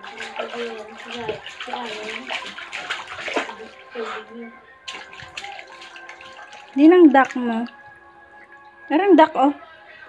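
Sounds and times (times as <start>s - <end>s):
water splashing in a pool: 0.0s - 7.8s.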